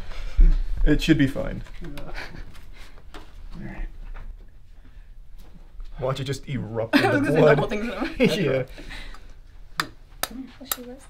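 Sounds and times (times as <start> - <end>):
faint murmurs and breaths: 1.6 - 6.0, 8.5 - 9.7.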